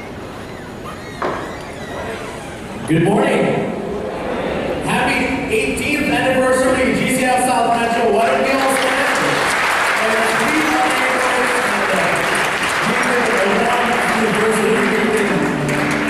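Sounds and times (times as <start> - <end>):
congregation applauding: 7.9 - 16.0.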